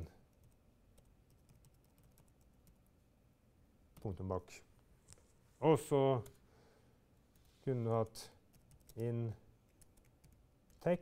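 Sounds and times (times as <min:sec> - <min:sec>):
computer keyboard typing: 0:00.3 - 0:02.8, 0:08.5 - 0:10.9.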